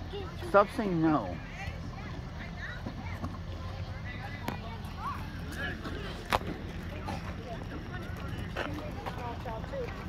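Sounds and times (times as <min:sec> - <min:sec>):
distant people talking: 0:00.0 - 0:10.0.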